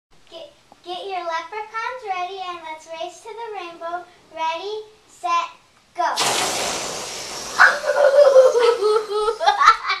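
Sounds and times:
air hissing out of balloons: 6.2s - 9.6s
children laughing: 7.5s - 10.0s.

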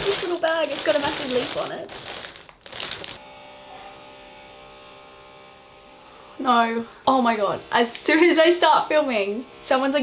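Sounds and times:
plastic bag rustling: 0.0s - 3.2s.

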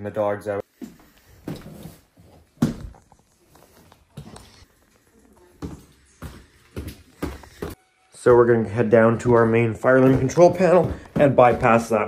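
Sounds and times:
footsteps on a plank floor: 5.4s - 12.0s.

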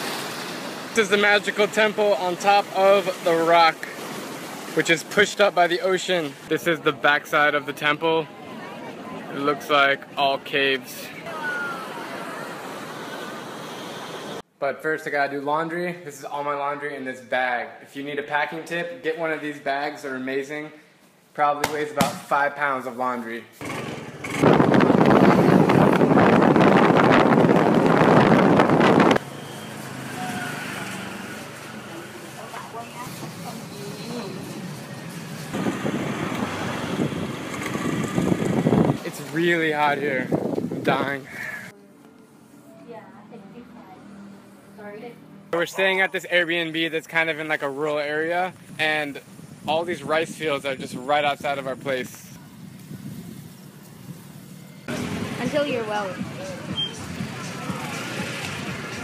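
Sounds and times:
loud rushing street noise: 10.8s - 14.4s, 23.6s - 41.8s, 52.4s - 59.0s
faint voices: 55.3s - 59.0s.

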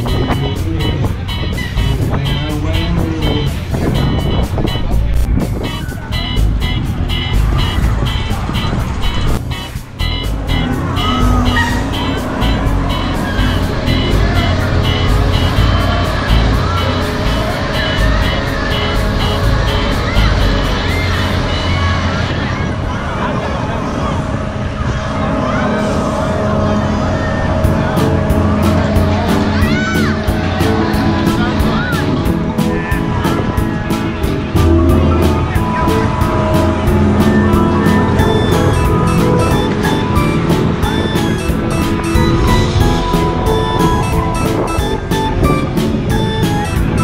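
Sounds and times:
loud music with heavy bass: 0.0s - 22.1s, 27.5s - 47.0s
crowd voices: 0.0s - 47.0s
machine hum and rumble: 0.0s - 47.0s.

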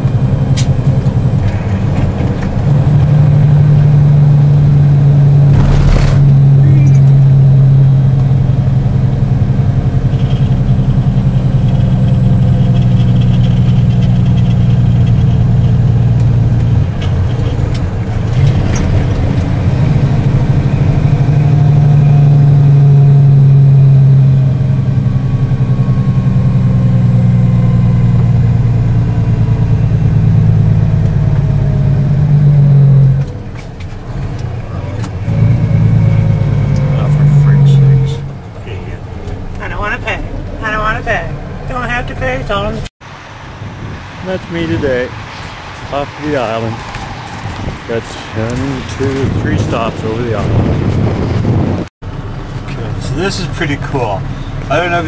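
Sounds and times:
vehicle engine and road drone: 0.0s - 55.0s.

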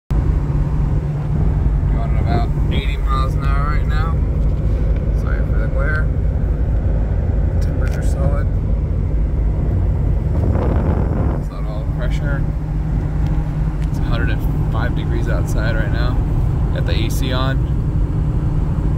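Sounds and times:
car cabin road and engine drone: 0.1s - 18.9s
rush of noise: 0.1s - 18.9s.

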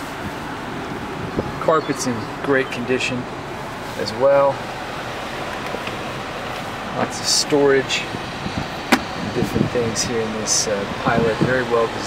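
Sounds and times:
car cabin background hiss: 0.0s - 12.0s.

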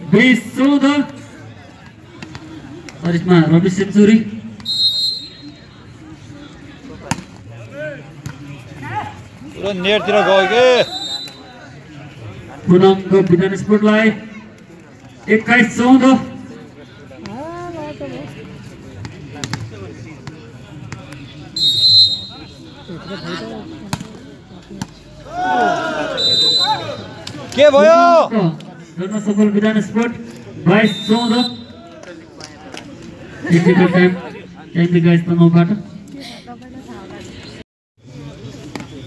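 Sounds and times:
voices of players and spectators: 0.0s - 39.0s
referee's whistle blast: 4.6s - 5.5s, 10.8s - 11.5s, 21.6s - 22.6s, 26.2s - 27.1s, 30.8s - 31.8s
people shouting: 25.2s - 28.3s.

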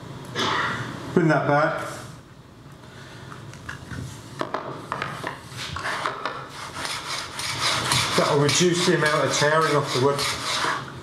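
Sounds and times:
plane blade rasping on wood: 6.5s - 10.9s.

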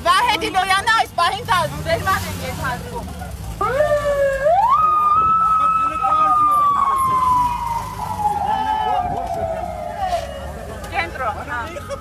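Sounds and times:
voices: 0.0s - 12.0s
police siren wailing: 3.6s - 12.0s.

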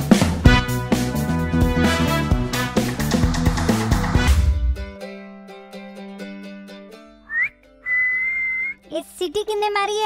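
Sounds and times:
person wolf whistling: 7.3s - 8.8s.

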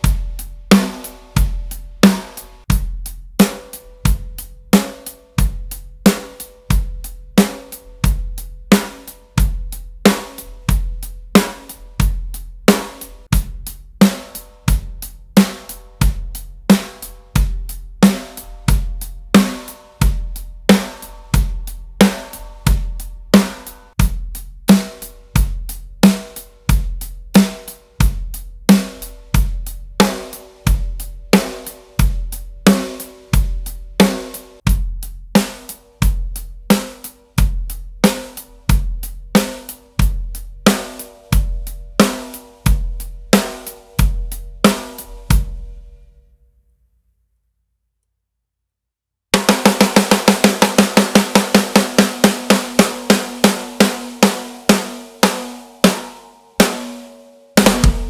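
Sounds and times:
drum kit groove: 0.0s - 46.2s, 49.3s - 58.0s
snare drum ringing: 18.0s - 23.9s, 49.4s - 58.0s.

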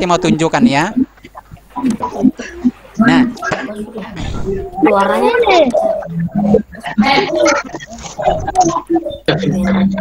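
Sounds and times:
voices over a video call: 0.0s - 10.0s.

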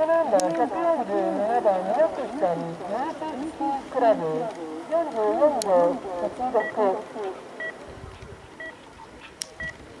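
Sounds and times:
two-tone electronic beeps: 6.6s - 6.8s.

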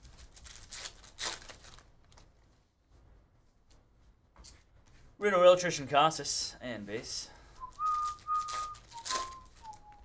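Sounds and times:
trading cards rustling: 0.0s - 2.3s, 7.6s - 10.0s
person whistling a tune: 7.6s - 10.0s.

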